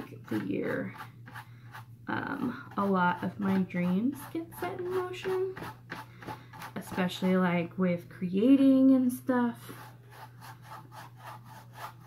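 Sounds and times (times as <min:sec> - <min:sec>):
paintbrush scrubbing on canvas: 0:09.6 - 0:12.0.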